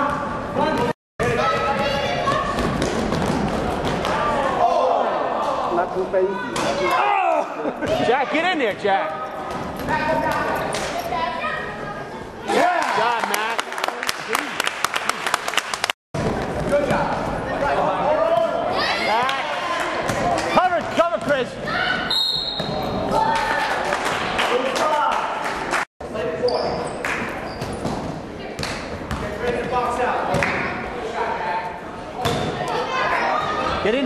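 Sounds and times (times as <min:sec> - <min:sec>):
basketball bouncing on court: 0:28.9 - 0:29.4.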